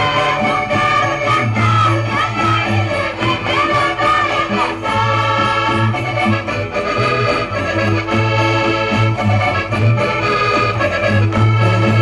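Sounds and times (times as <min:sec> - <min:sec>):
folk dance music on accordion: 0:00.0 - 0:12.0.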